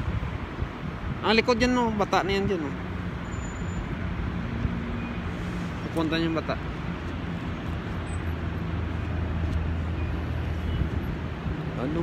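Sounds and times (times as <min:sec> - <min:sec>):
road noise: 0:00.0 - 0:12.0.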